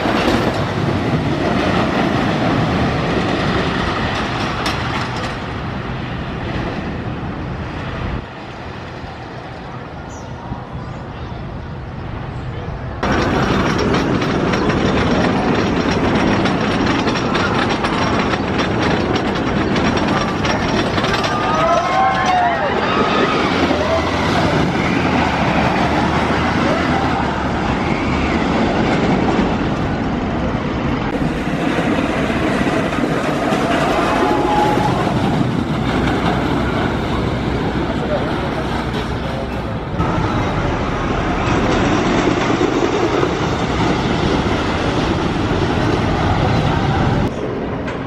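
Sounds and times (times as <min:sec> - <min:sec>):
roller coaster rumbling on track: 0:00.0 - 0:48.0
riders crying out: 0:33.5 - 0:35.3.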